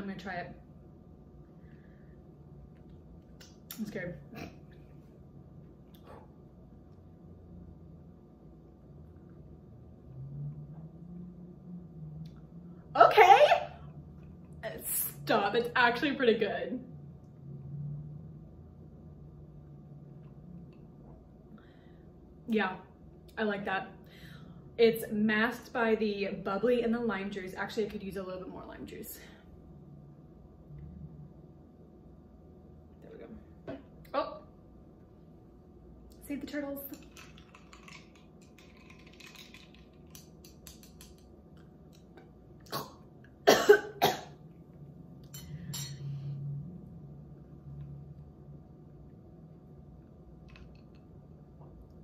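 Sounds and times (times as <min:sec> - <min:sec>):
faint low steady hum: 0:00.0 - 0:52.0
person coughing: 0:42.7 - 0:44.4.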